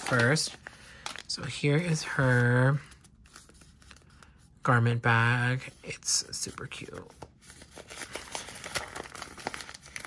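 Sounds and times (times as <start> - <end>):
plastic bag crinkling: 0.0 - 1.6, 7.8 - 10.0.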